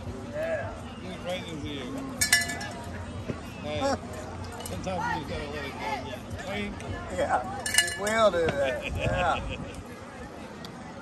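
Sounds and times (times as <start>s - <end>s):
chatter of spectators: 0.0s - 11.0s
sharp metallic clinks: 2.2s - 2.9s, 7.6s - 8.4s.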